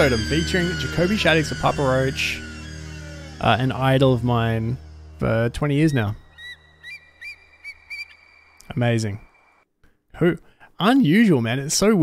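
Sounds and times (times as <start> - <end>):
faint steady high tone: 0.0 - 6.8
whistled bird-like chirps: 5.9 - 9.6.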